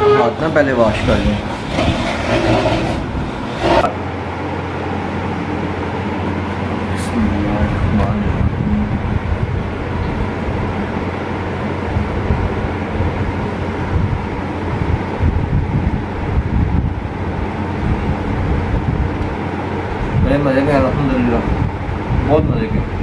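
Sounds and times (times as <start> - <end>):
continuous rushing noise: 0.0 - 23.0
steady low hum: 0.0 - 23.0.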